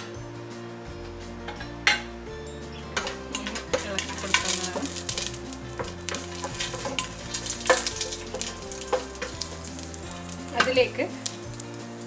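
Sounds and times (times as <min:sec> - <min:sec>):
spices sizzling in hot oil: 0:02.8 - 0:12.0.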